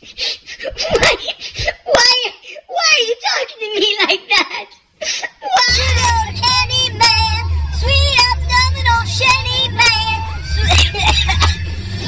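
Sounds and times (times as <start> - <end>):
man singing in high voice: 5.7 - 11.6
car cabin rumble: 5.7 - 12.0.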